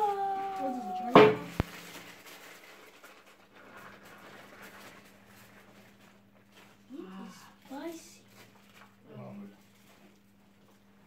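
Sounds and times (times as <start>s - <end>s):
rice pattering onto leaves: 0.0s - 10.8s.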